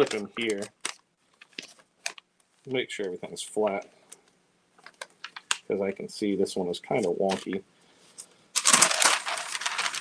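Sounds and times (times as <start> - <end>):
paper rustling and crinkling: 0.0 - 2.2, 6.9 - 10.0.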